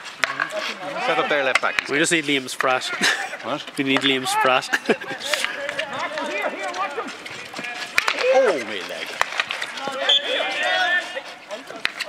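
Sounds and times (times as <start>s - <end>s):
men calling out and talking: 0.2s - 12.0s.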